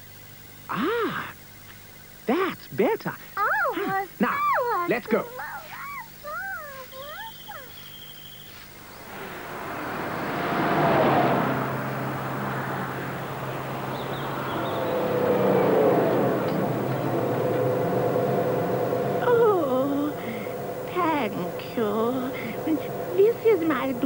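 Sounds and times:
cartoon car approaching: 0:03.4 - 0:24.0.

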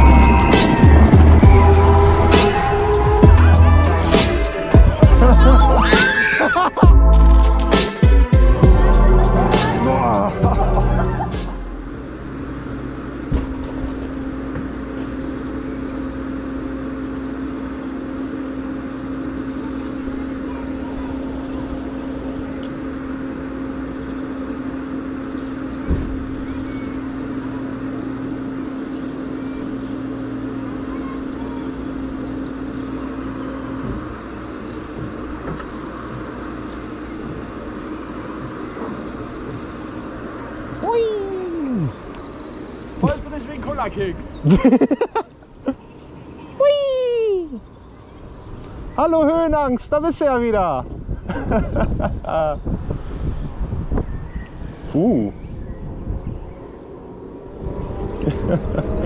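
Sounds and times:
constant rushing noise: 0:00.0 - 0:59.0
ride machinery humming: 0:00.0 - 0:59.0.

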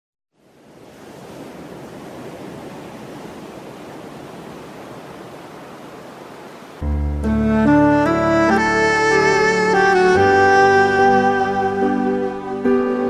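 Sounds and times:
music with saxophone: 0:06.8 - 0:13.0.

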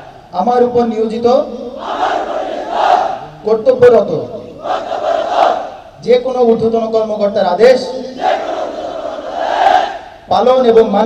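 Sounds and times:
group chorus repeating: 0:01.8 - 0:03.4, 0:04.6 - 0:06.0, 0:08.1 - 0:10.2
man speaking: 0:03.2 - 0:04.5, 0:10.3 - 0:11.0.

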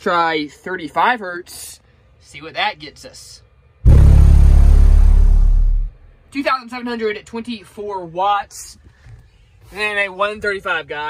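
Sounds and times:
subwoofer low test tone: 0:03.8 - 0:06.2.

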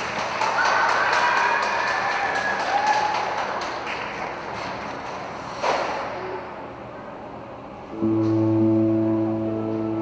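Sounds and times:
music with long low notes: 0:07.9 - 0:10.0.

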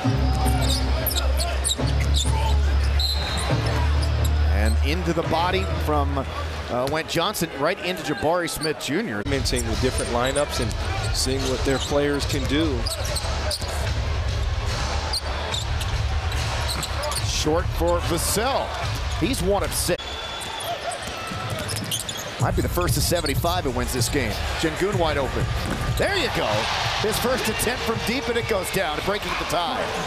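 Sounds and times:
arena crowd noise: 0:00.0 - 0:30.0
sneakers squeaking: 0:00.3 - 0:05.0, 0:09.5 - 0:14.4, 0:15.1 - 0:17.3, 0:20.0 - 0:22.5, 0:23.1 - 0:23.4, 0:25.4 - 0:26.9.

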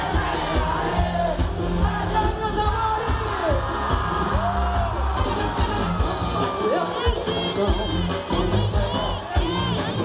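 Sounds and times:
crowd shouting and cheering: 0:00.0 - 0:10.0
live band playing: 0:00.0 - 0:10.0.

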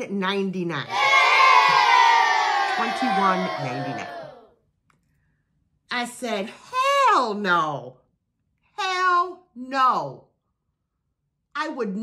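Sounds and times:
woman speaking: 0:00.0 - 0:00.9, 0:02.7 - 0:04.1, 0:05.9 - 0:08.0, 0:08.7 - 0:10.3, 0:11.5 - 0:12.0.

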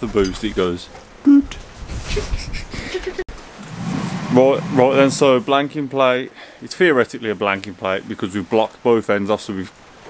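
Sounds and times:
man laughing softly: 0:02.1 - 0:03.3
low rumble of room noise: 0:03.3 - 0:06.4.

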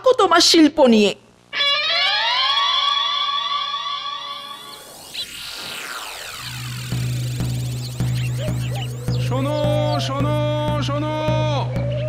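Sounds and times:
electronic tone gliding upward: 0:01.6 - 0:10.7.

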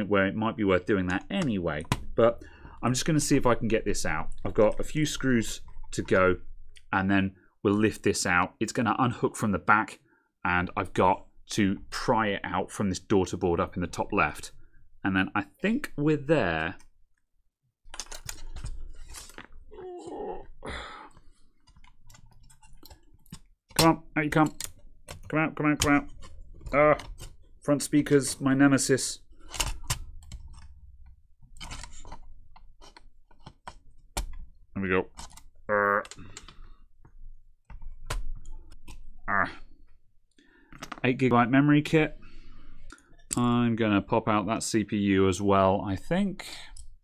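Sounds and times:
plastic clicks and scraping: 0:17.9 - 0:19.7, 0:21.2 - 0:27.6, 0:29.3 - 0:39.2
laptop parts being handled: 0:17.9 - 0:19.8, 0:21.2 - 0:28.2, 0:29.2 - 0:39.2
wordless vocal sounds: 0:19.7 - 0:21.3.

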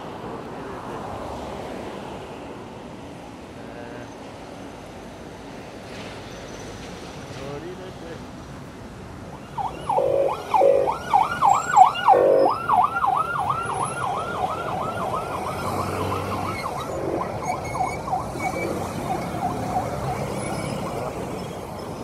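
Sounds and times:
siren yelping: 0:09.4 - 0:21.3
horn blasts: 0:09.8 - 0:12.6.

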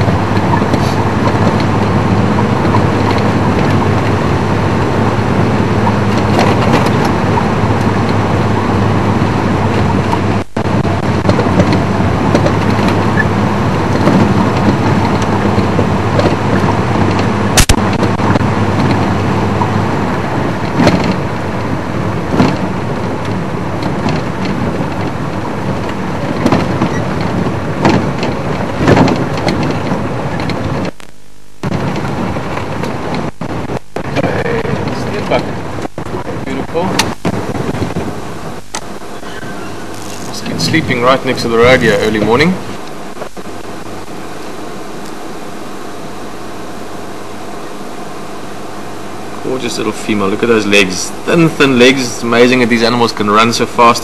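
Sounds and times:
vehicle engine and road rumble: 0:00.0 - 0:54.0
sharp knocks: 0:25.8 - 0:34.1.

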